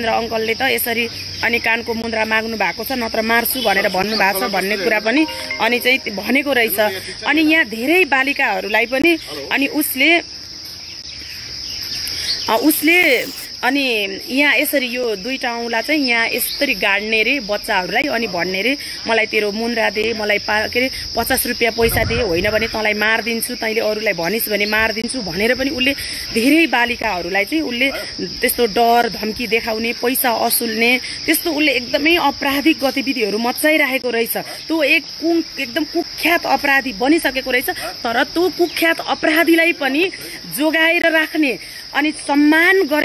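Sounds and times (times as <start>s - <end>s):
woman talking: 0.0s - 10.3s, 12.5s - 43.0s
insects chirring: 0.0s - 43.0s.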